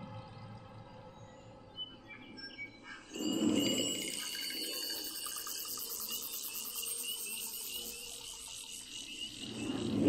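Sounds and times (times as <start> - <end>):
insects chirping: 3.1 - 10.0.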